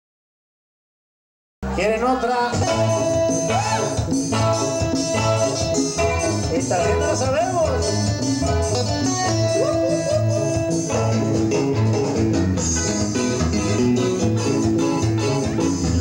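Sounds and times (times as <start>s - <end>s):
live band playing dance music: 1.6s - 16.0s.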